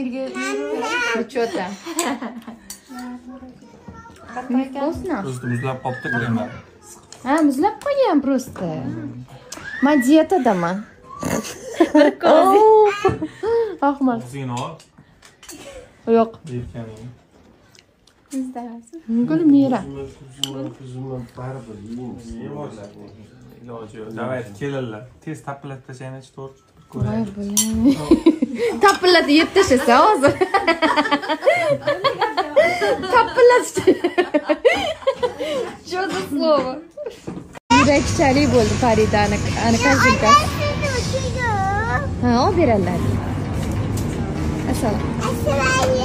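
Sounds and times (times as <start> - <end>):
child talking and calling out: 3.6 - 4.5, 39.8 - 42.2, 45.2 - 46.0
tableware clink: 27.5 - 27.9.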